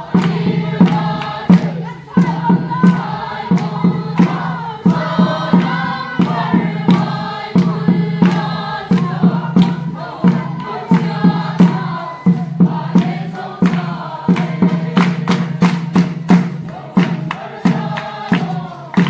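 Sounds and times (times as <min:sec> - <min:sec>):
many voices chanting together: 0:00.0 - 0:19.0
sharp rhythmic beats: 0:00.0 - 0:19.0.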